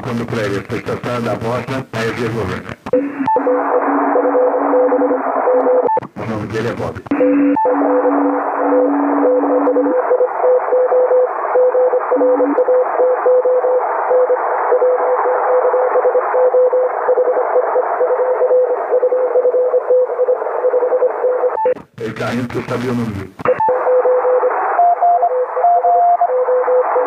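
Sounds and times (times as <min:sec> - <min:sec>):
radio band hiss: 0:00.0 - 0:03.8, 0:06.0 - 0:07.2, 0:21.7 - 0:23.6
lower-pitched morse signal: 0:03.0 - 0:06.0, 0:07.1 - 0:21.8
morse code tone: 0:03.0 - 0:06.0, 0:07.1 - 0:15.0, 0:24.8 - 0:26.3.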